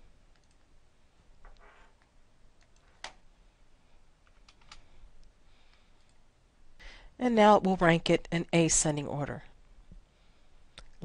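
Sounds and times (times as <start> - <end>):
faint keyboard keystrokes: 4.2 - 4.9.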